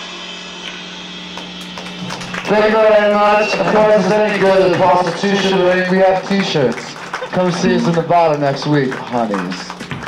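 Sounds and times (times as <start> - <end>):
electric guitar sustained tone: 0.0 - 6.7, 7.3 - 8.4.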